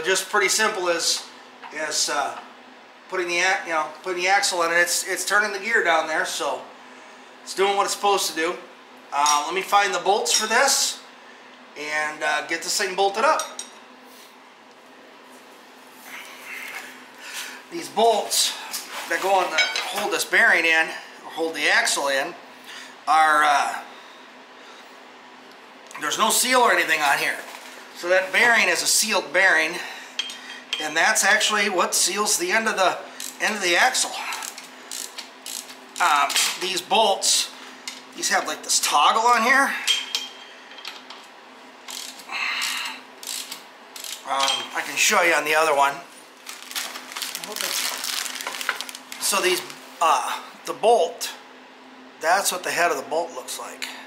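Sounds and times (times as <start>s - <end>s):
space heater hum: 0.0s - 54.0s
ratchet wrench clicking: 34.4s - 36.1s, 41.9s - 44.5s.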